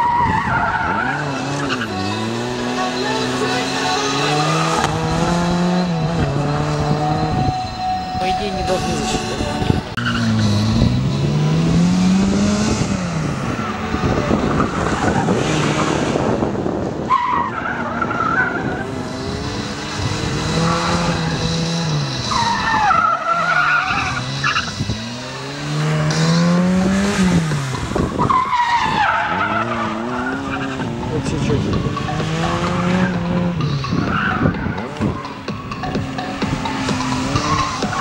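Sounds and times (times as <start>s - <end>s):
tyres squealing: 0.0s - 11.6s, 17.1s - 38.0s
car engine revving: 0.0s - 38.0s.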